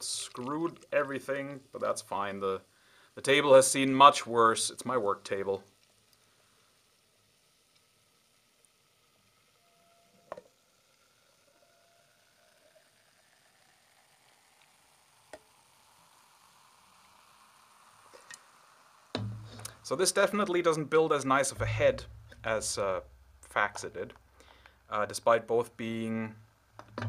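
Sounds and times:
foam fizzing: 0.0 - 9.3, 10.5 - 26.1
beer pouring into glass mug: 11.0 - 19.7
light knocks: 19.2 - 19.8.

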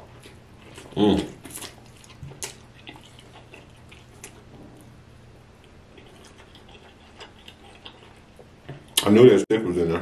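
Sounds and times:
person chewing with mouth closed: 0.0 - 9.0.

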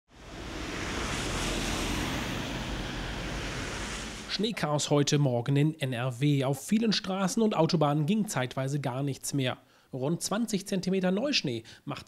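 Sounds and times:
wind rushing on microphone: 0.1 - 4.3
low rumble: 0.1 - 4.4.

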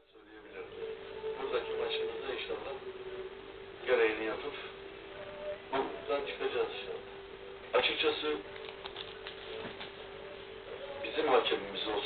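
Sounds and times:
low constant hum: 0.0 - 12.0
steady hiss: 0.1 - 12.0.

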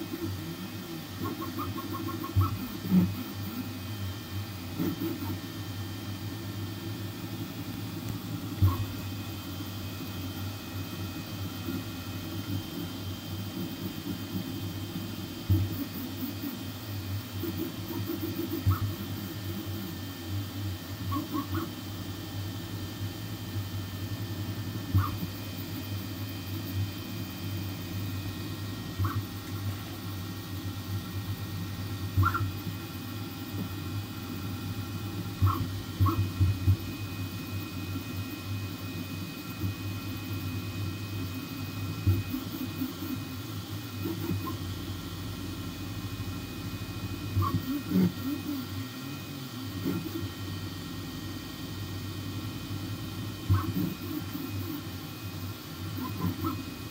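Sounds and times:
printer motors and fans humming: 0.0 - 56.9.

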